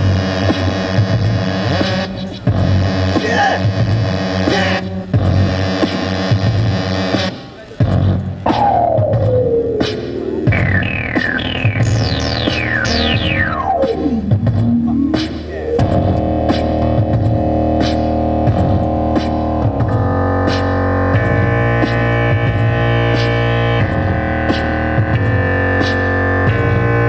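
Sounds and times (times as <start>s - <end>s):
bass line: 0.0s - 27.0s
electronic beat: 0.0s - 27.0s
synth chords: 0.0s - 27.0s
falling synth pitch sweep: 8.5s - 27.0s.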